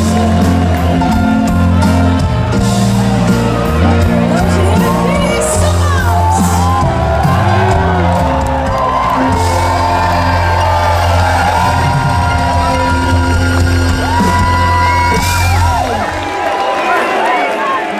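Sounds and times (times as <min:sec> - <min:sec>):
live band playing schlager: 0:00.0 - 0:17.8
crowd whooping: 0:00.0 - 0:17.9.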